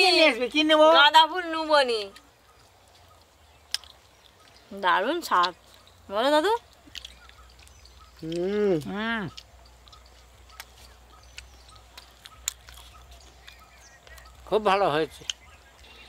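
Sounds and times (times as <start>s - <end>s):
low outdoor background: 0.0s - 16.0s
faint scattered clicks: 2.0s - 16.0s.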